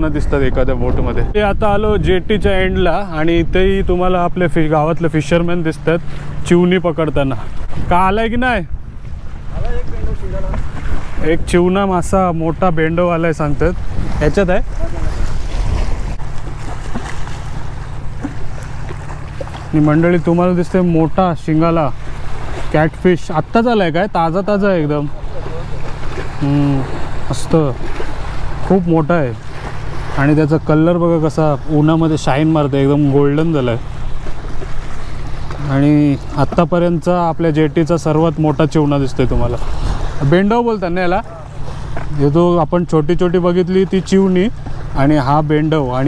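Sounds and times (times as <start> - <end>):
boat engine drone: 0.0 - 46.0
water lapping at jetty: 0.0 - 46.0
wind buffeting microphone: 0.0 - 46.0.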